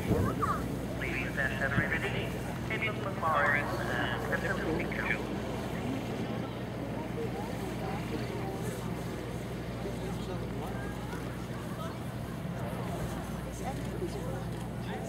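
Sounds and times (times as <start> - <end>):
indistinct voices: 0.0 - 6.9.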